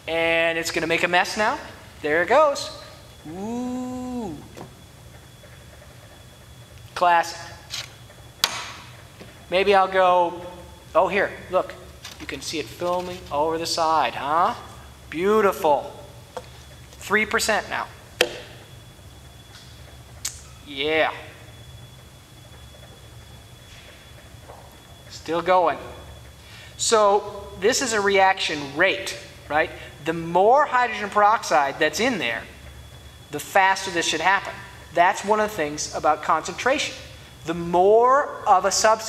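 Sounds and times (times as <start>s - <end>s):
faint high-pitched whine: 0.0s - 39.0s
steady low hum: 0.0s - 39.0s.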